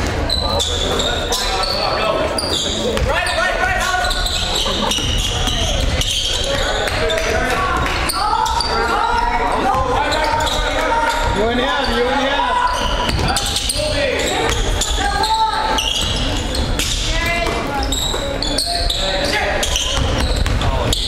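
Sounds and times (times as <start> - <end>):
basketball bouncing on hardwood floor: 20.0 - 20.7.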